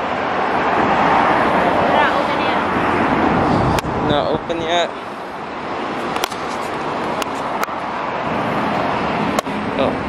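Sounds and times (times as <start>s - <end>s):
passing traffic: 0.0s - 10.0s.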